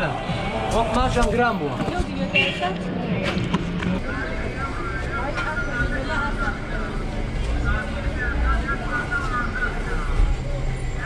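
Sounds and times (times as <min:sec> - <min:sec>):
low traffic rumble: 0:00.0 - 0:11.0
passers-by talking: 0:00.0 - 0:11.0.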